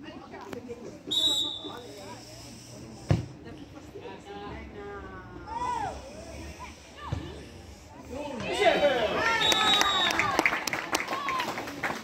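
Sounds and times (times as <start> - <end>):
referee's whistle blast: 9.4 - 10.2.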